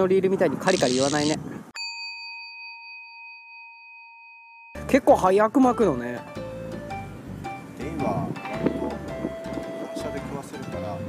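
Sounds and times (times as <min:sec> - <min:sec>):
bell-like chime ringing: 0:01.8 - 0:05.1.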